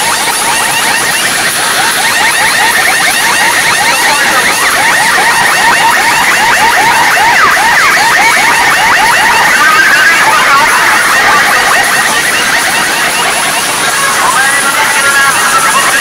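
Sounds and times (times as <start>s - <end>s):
loud electronic music: 0.0s - 16.0s.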